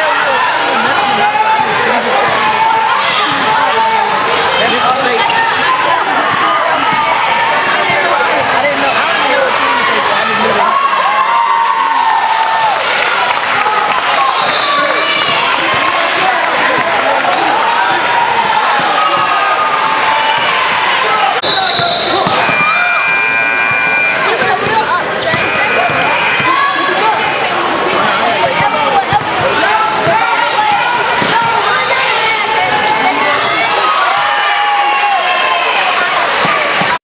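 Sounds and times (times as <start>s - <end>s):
voices and crowd noise: 0.0s - 37.0s
held high tone: 21.4s - 26.6s.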